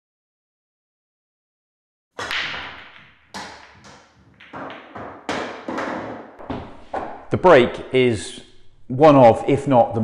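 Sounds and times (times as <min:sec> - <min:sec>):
cue ball cracking into rack: 0:02.2 - 0:07.8
pool balls clacking: 0:02.2 - 0:08.9.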